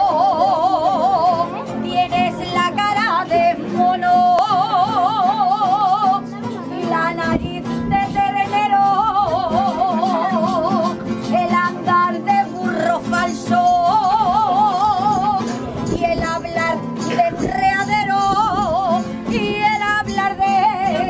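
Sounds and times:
accordion: 0.0 - 21.0
guitars: 0.0 - 21.0
woman singing with vibrato: 0.0 - 21.0.

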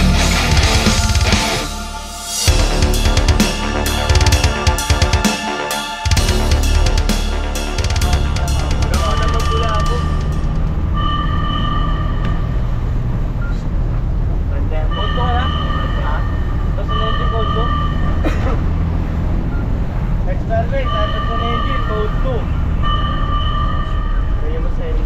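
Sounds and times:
background music: 0.0 - 13.1
warning horn blasts: 0.0 - 13.1, 14.9 - 18.2, 20.6 - 24.8
fire truck engine running: 0.0 - 24.8.

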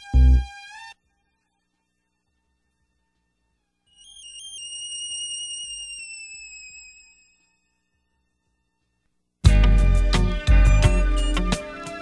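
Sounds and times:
high whistling synthesizer lead: 3.9 - 8.0, 10.1 - 11.8.

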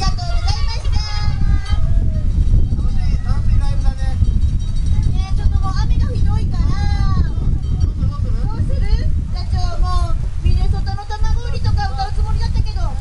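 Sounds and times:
indistinct voices talking: 0.0 - 13.0
wind buffeting microphone: 0.0 - 13.0.

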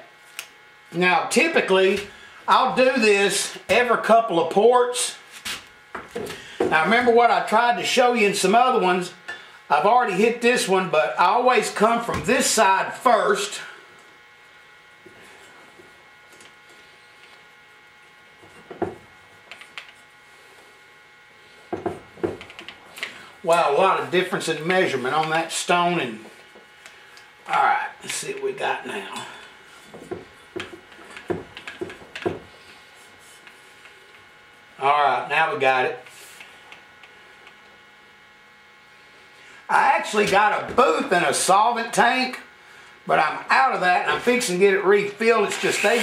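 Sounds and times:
electric drill motor whine: 45.0 - 46.0.

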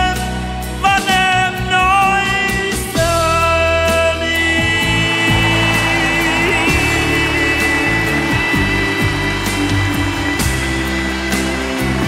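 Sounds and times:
ballad backing track: 0.0 - 12.0
audience applause: 4.7 - 12.0.

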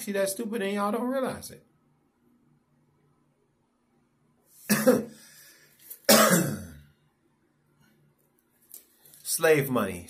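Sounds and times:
man clearing his throat: 4.7 - 5.2, 6.1 - 6.9.

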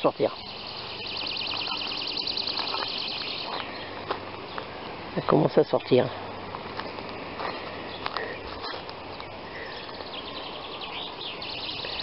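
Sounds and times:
small bird trilling: 0.4 - 3.9.

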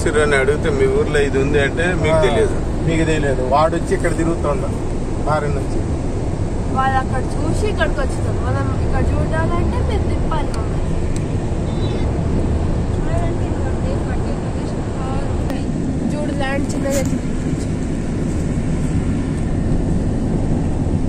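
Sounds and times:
vehicle road and engine rumble: 0.0 - 21.0.

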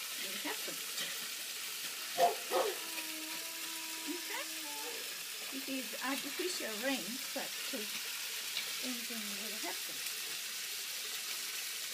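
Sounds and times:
garden hose spraying water: 0.0 - 11.9.

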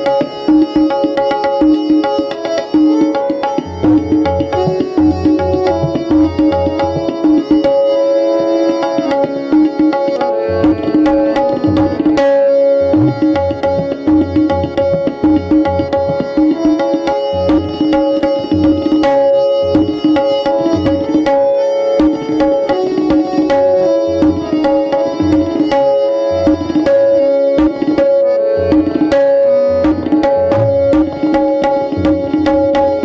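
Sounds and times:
fast tabla strokes: 0.0 - 33.0
harmonium melody: 0.0 - 33.0.

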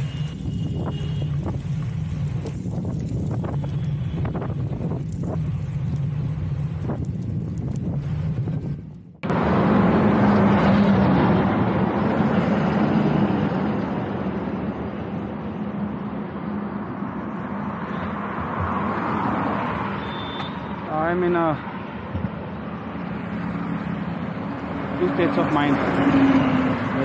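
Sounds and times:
wind on microphone: 0.0 - 9.2
highway traffic noise: 0.0 - 27.0
road tyre rumble: 0.0 - 27.0
truck engine drone: 7.9 - 19.9.

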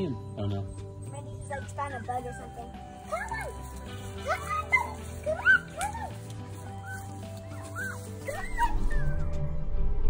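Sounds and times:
background music with low beat: 0.0 - 10.0
puppy yipping and whimpering: 3.0 - 9.3.

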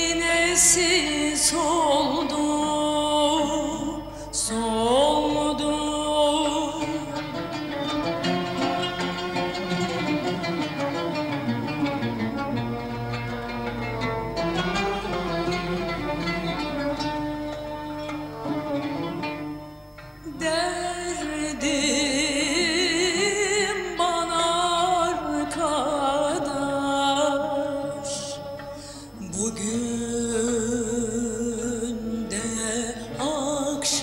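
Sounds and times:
small ensemble playing art music: 6.5 - 21.8.

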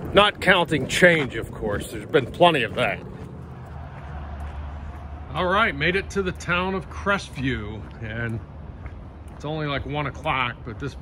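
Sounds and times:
low rumble: 0.0 - 5.5.

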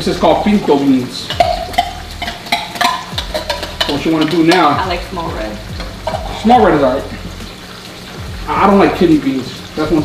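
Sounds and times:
sauce sizzling: 0.0 - 10.0
metal can knocking against pot: 1.2 - 5.0, 5.7 - 6.5.

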